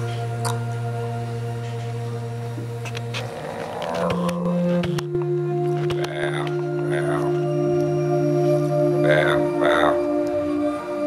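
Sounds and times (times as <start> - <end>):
singer and saxophone drone music: 0.0 - 11.0.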